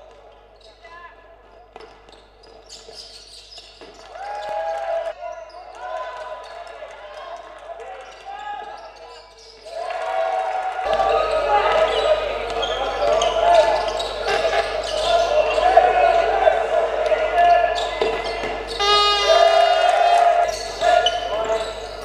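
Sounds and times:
players and spectators voices: 0:03.7 - 0:22.0.

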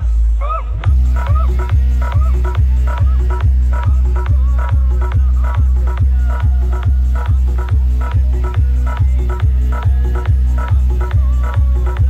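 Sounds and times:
heavy deep bass kick drum: 0:00.0 - 0:12.0
loud dance music: 0:00.0 - 0:12.0
synth stabs: 0:00.1 - 0:12.0.

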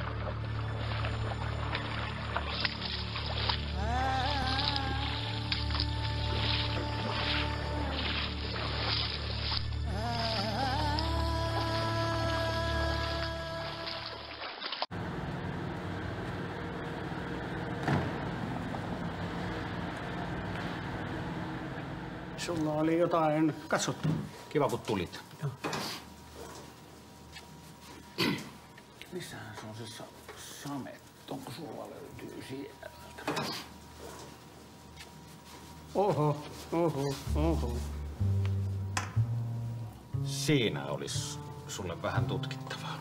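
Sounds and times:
feet splashing through water: 0:00.0 - 0:12.0, 0:13.0 - 0:14.9
city street traffic: 0:14.9 - 0:22.6
steady low hum: 0:14.9 - 0:43.0.

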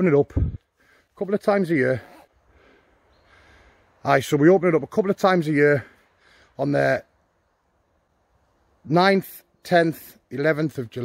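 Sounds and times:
soft breathing: 0:02.1 - 0:04.0, 0:05.8 - 0:06.6.

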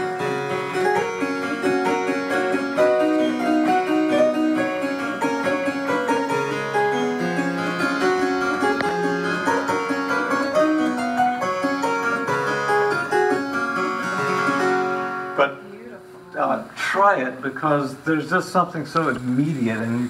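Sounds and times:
harpsichord playing: 0:00.0 - 0:16.6.

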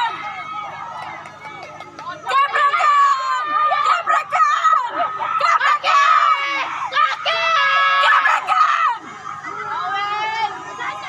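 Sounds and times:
people shouting and screaming: 0:00.0 - 0:11.0.

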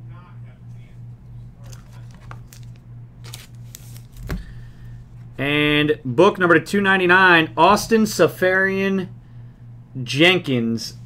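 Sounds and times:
low electrical hum: 0:00.0 - 0:11.0
plastic card holders rustling: 0:01.6 - 0:04.6.

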